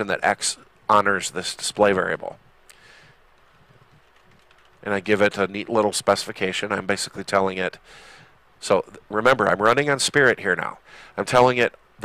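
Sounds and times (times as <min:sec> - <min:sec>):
computer keyboard keystrokes: 0:03.4 - 0:04.8.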